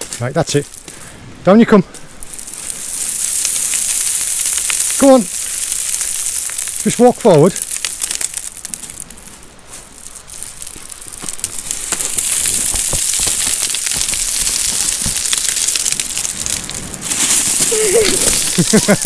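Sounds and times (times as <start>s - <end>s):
boots crunching on shingle: 0.0s - 1.0s, 1.8s - 19.0s
steady hiss: 0.0s - 19.0s.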